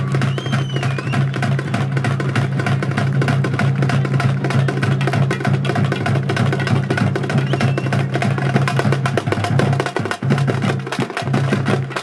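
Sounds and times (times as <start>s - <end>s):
fast percussion music: 0.0s - 12.0s.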